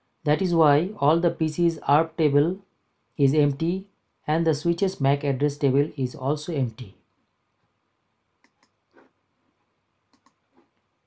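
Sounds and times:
computer mouse clicks: 8.4 - 10.8.

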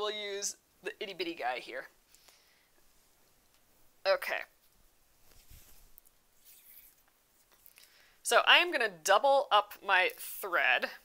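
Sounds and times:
soft rustling of hands: 4.6 - 8.0.

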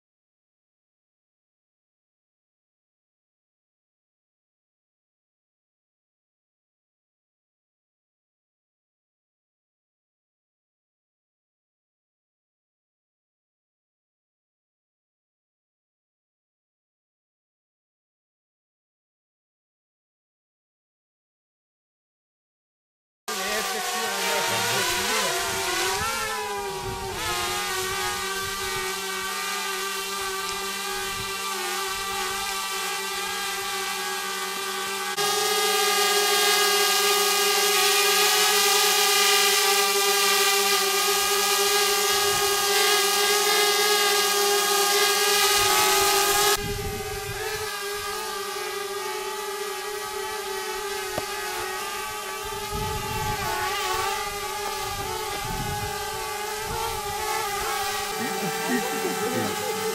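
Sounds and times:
motor humming steadily: 23.3 - 59.9.

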